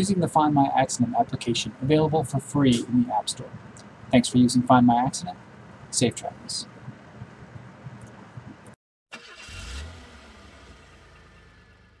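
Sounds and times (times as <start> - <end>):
background hiss: 0.0 - 8.8.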